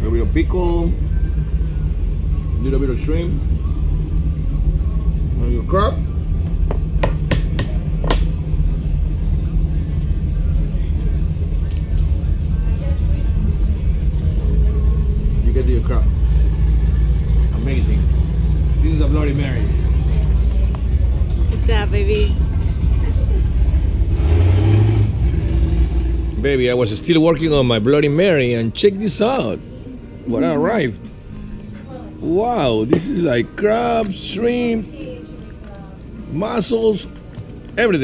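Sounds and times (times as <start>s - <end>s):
low rumble: 0.0s - 28.8s
faint voices: 7.7s - 24.2s.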